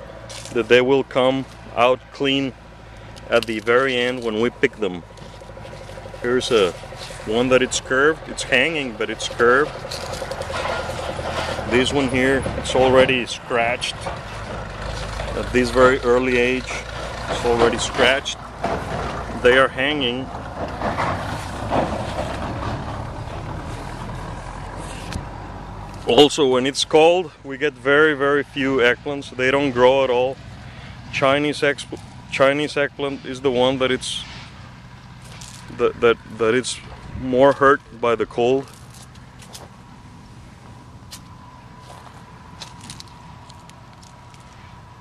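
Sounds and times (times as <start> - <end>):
low motor hum: 0.0 - 45.0
steady low rumble: 0.0 - 45.0
leaves rustling against camera: 0.1 - 1.7, 2.9 - 16.0, 34.0 - 45.0.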